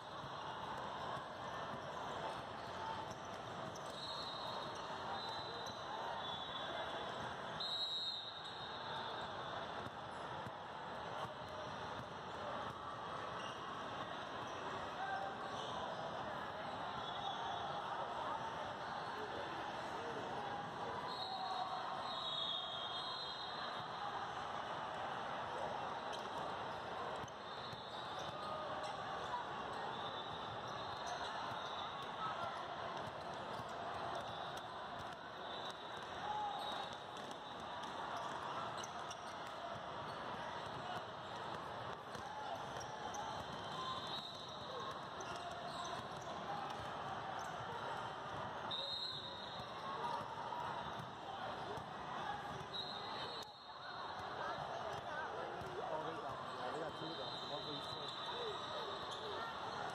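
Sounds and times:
chatter of many voices: 0.0s - 59.9s
basketballs bouncing on court: 37.1s - 43.8s, 44.4s - 48.7s.

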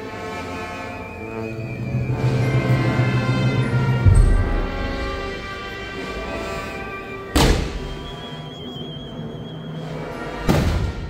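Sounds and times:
brass band funeral march: 0.0s - 11.0s.

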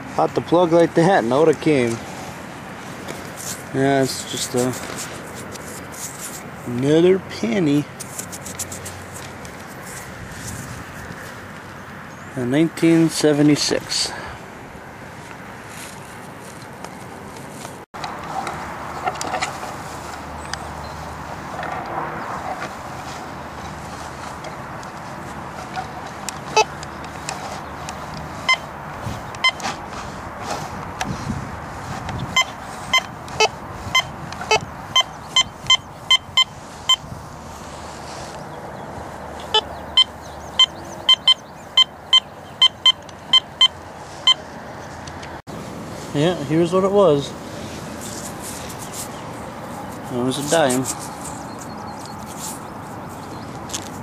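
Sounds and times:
metal detector beeping: 25.8s - 27.6s, 28.4s - 29.8s, 32.2s - 37.2s, 39.4s - 44.5s.

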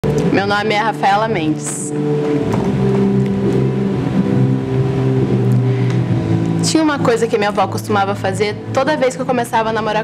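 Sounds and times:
slow sustained low chords: 0.0s - 9.8s.

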